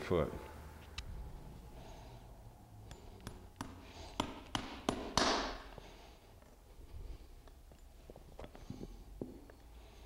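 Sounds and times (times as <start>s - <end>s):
hammer tapping on nail: 2.9s - 5.6s.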